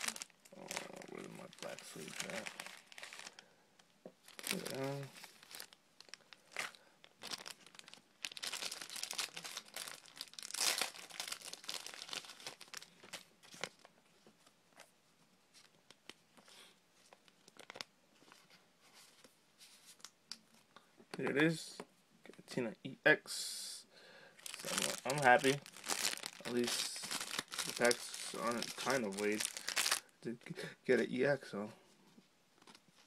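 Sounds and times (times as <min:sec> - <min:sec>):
plastic card sleeves rustling: 0:00.0 - 0:03.4, 0:24.4 - 0:30.0.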